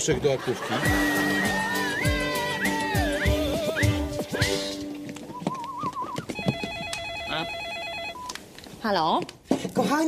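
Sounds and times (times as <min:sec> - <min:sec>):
telephone ringing with warbling trill: 0:06.4 - 0:08.3.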